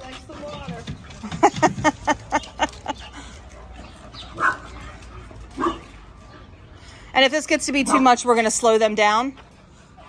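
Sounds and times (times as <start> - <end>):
puppy play barks: 5.5 - 6.0.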